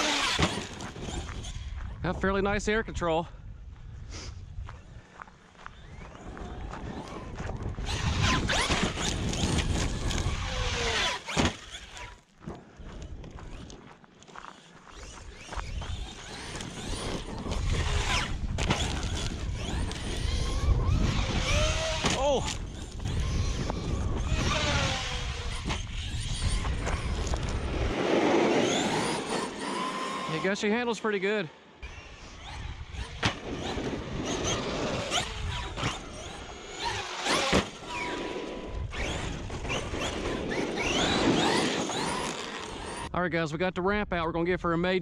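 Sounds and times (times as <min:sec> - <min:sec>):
electric motor whining: 0:00.0 - 0:01.8, 0:05.6 - 0:12.2, 0:14.8 - 0:30.7, 0:31.8 - 0:43.1
tyre and drivetrain rush: 0:00.0 - 0:01.9, 0:04.5 - 0:43.1.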